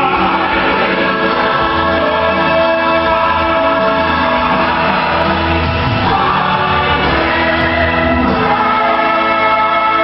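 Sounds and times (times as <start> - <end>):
church choir singing: 0.0 - 10.0.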